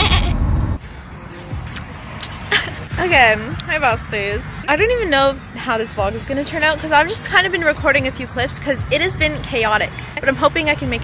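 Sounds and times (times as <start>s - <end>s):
road rumble inside moving car: 0.0s - 11.0s.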